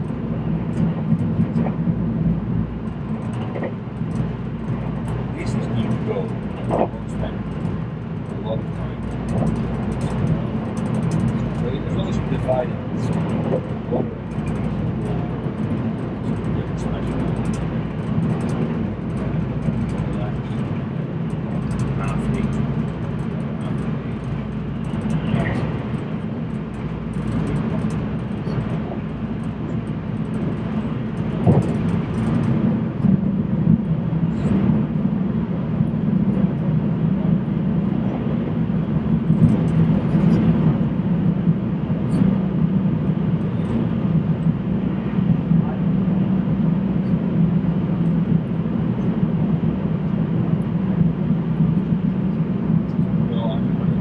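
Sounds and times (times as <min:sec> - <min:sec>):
train running rumble: 0:00.0 - 0:54.0.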